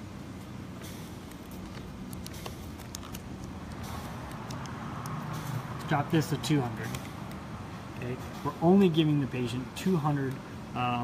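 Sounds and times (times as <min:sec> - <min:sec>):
ventilator humming: 0:00.0 - 0:11.0.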